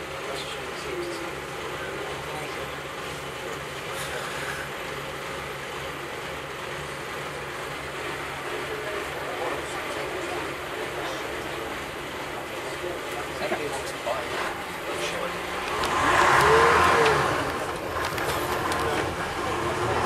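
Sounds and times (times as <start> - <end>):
bus diesel engine running: 0.0 - 20.0
passengers talking faintly: 0.0 - 20.0.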